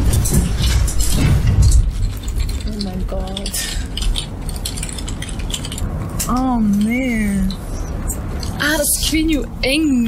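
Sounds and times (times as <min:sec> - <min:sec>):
keyboard typing: 0:02.0 - 0:08.6.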